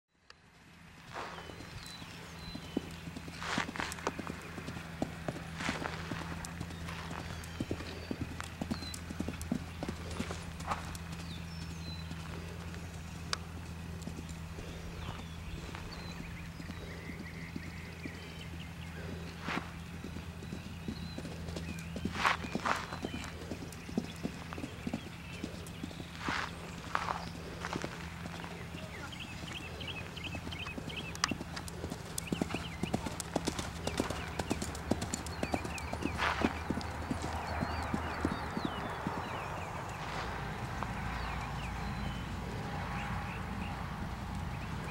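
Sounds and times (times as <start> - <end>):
low hum: 0.2 - 44.9
horse hoofbeats on sand: 1.1 - 43.8.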